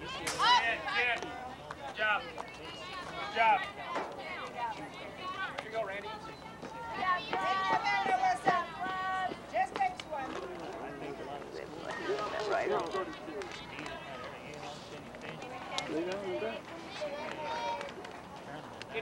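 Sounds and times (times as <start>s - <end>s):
indistinct voices talking: 0.0s - 19.0s.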